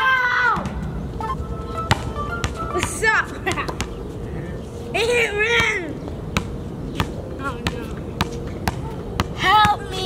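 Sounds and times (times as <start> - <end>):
basketball bouncing: 6.4 - 10.0.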